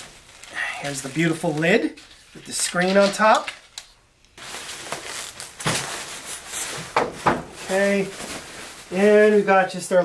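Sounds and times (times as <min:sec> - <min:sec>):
plastic wrap rustling: 0:00.0 - 0:03.8, 0:04.4 - 0:10.0.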